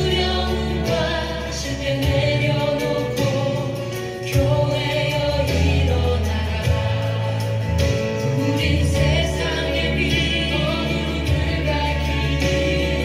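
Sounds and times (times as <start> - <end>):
sustained bass accompaniment: 0.0 - 13.0
choir singing held notes: 5.4 - 13.0.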